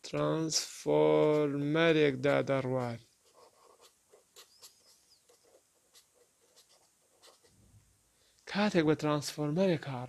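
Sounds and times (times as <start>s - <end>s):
pen scratching on paper: 1.0s - 1.7s, 2.3s - 7.6s.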